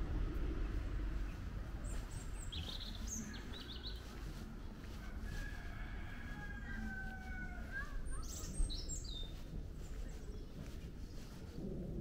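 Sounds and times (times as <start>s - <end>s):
low rumble: 0.0s - 5.0s, 8.5s - 12.0s
small birds chirping: 0.4s - 12.0s.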